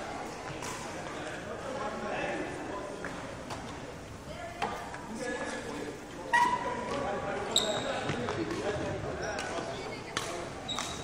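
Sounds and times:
voices in echoing hall: 0.0 - 11.0.

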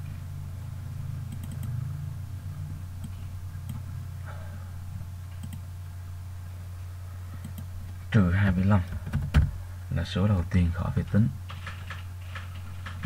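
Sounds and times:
low electrical hum: 0.0 - 13.0
computer mouse or keyboard clicks: 1.3 - 1.8, 5.4 - 5.6.

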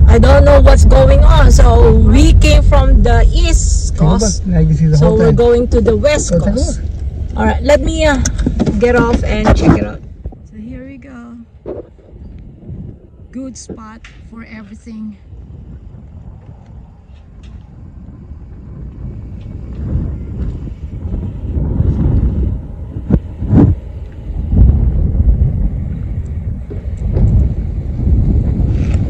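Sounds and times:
wind buffeting microphone: 0.0 - 29.0.

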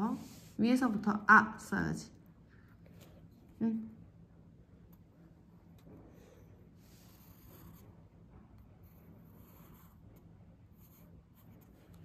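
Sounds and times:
pencil scratching on paper: 6.8 - 8.1, 8.7 - 12.0.

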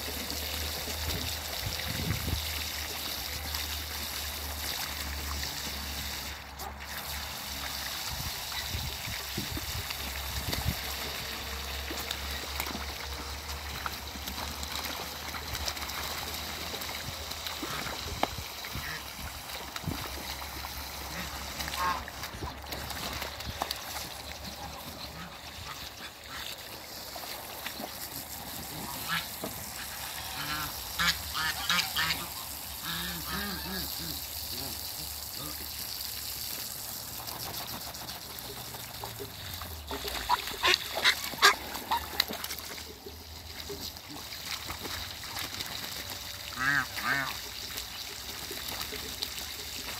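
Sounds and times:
water splashing: 0.0 - 49.9
ducks quacking: 17.6 - 19.6, 20.9 - 23.6, 24.4 - 26.8, 27.8 - 35.6, 38.4 - 43.0, 46.5 - 47.5.

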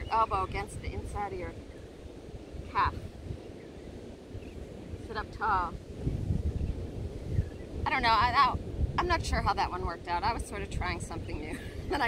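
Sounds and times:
woman speaking: 0.0 - 1.6, 2.7 - 3.0, 5.1 - 5.8, 7.9 - 12.0
wind buffeting microphone: 0.0 - 12.0.

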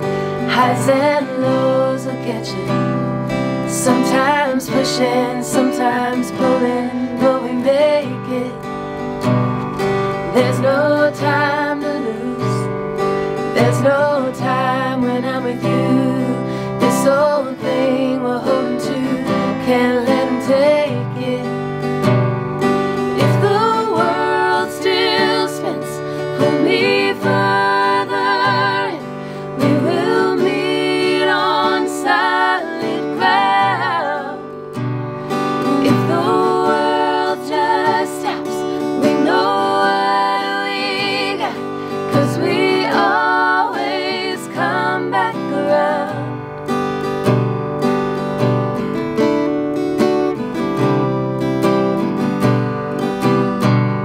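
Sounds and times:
women singing in harmony: 0.0 - 8.8, 10.2 - 12.8, 13.4 - 21.6, 23.0 - 46.4
strummed acoustic guitar: 0.0 - 54.0.

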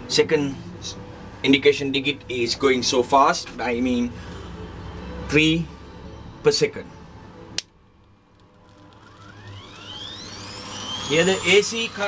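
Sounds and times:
motor whine rising in pitch: 8.2 - 12.0.

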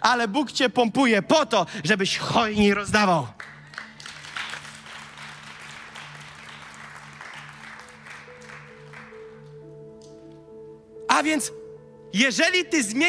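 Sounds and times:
soft held chord of music: 0.0 - 13.0
congregation applauding: 3.4 - 9.7.

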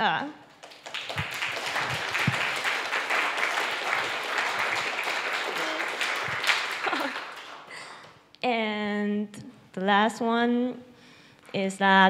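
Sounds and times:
audience applauding: 0.6 - 8.1.

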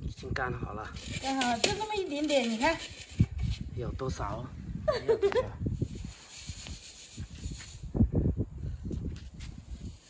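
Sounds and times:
wind buffeting microphone: 0.0 - 10.0
person laughing: 4.8 - 5.6.

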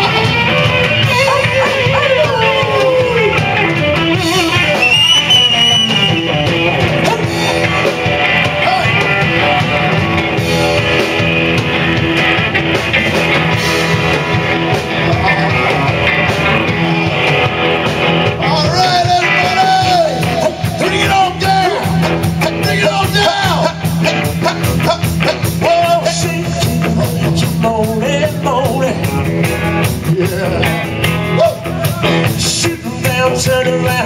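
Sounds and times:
bass guitar: 0.0 - 34.0
drum kit: 0.0 - 34.0
electric guitars: 0.0 - 34.0.

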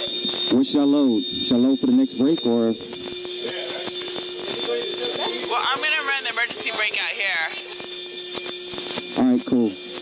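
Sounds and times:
fire alarm steady tone: 0.0 - 10.0.

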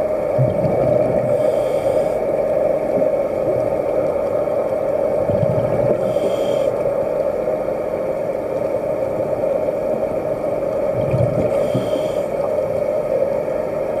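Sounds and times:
underwater motor hum: 0.0 - 14.0
regulator hiss: 1.0 - 3.0, 5.9 - 7.7, 11.4 - 13.8.

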